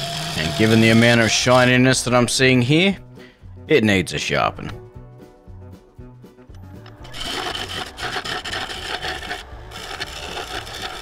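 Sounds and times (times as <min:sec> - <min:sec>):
lathe gouge scraping wood: 0:00.0 - 0:01.9, 0:06.9 - 0:11.0
background music: 0:00.0 - 0:11.0.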